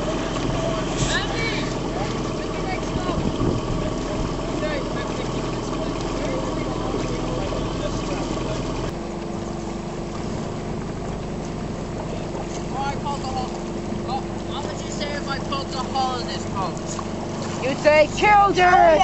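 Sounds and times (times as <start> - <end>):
outboard motor running: 0.0 - 19.0.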